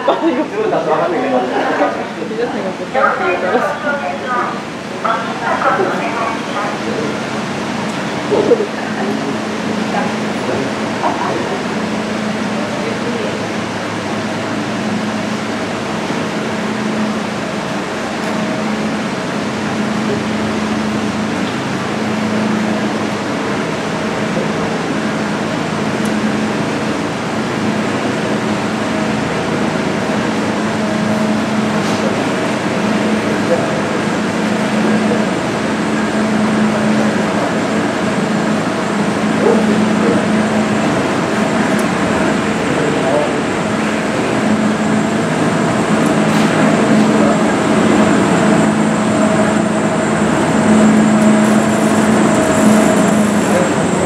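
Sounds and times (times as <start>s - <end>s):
inclined elevator mechanical hum: 0.0s - 54.0s.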